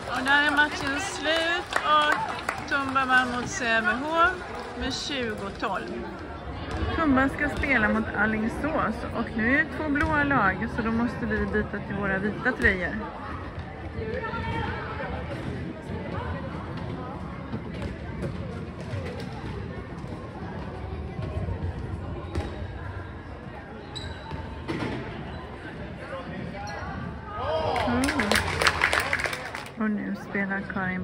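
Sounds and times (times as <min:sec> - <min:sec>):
players' voices: 0:00.0 - 0:31.0
ball bouncing on indoor court: 0:05.3 - 0:22.8.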